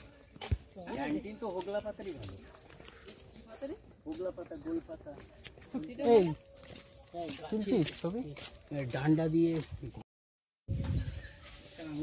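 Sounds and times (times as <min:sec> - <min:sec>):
people talking: 0:00.0 - 0:02.7, 0:03.4 - 0:06.4, 0:07.2 - 0:10.0
insect chorus: 0:00.0 - 0:10.0.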